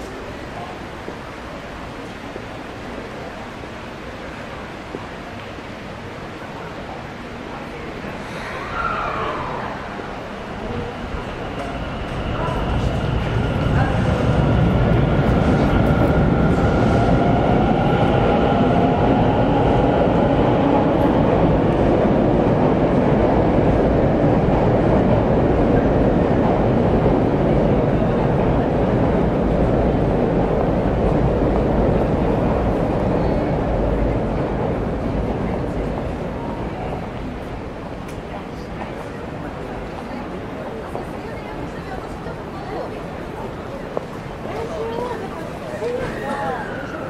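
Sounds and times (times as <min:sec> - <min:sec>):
train passing close: 0:00.0 - 0:47.0.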